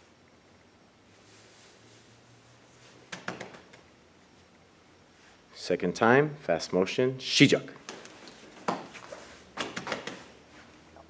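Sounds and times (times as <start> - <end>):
quick taps and rustles on mat: 3.1 - 3.9, 7.8 - 10.3.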